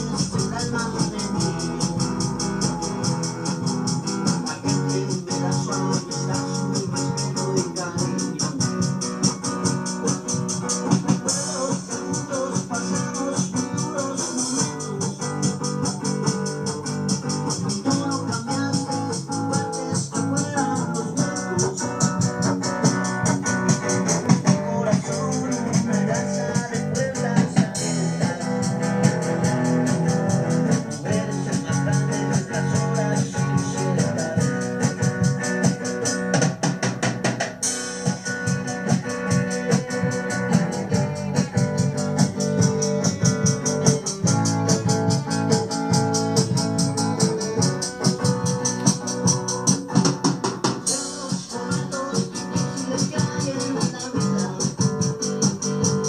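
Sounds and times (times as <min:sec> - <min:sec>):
rock band music: 0:00.0 - 0:56.0.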